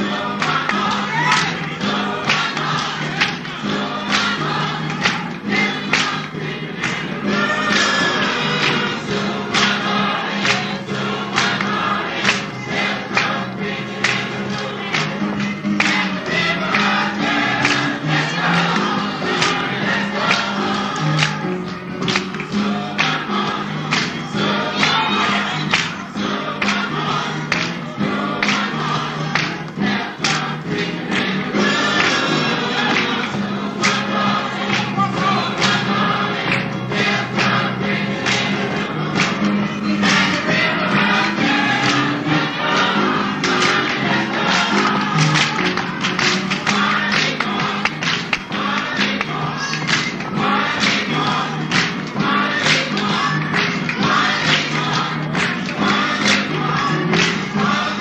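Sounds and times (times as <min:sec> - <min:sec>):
gospel choir singing: 0:00.0 - 0:58.0.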